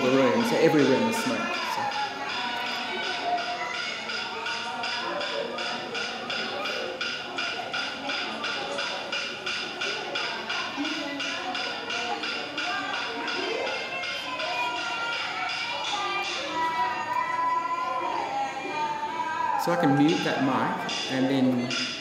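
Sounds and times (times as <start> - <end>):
rhythmic tapping beat: 0.0 - 17.2, 19.6 - 22.0.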